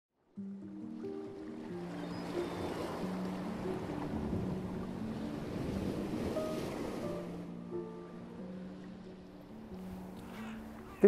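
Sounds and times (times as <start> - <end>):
soft music with low notes: 0.2 - 11.0
sea surf breaking: 1.2 - 11.0.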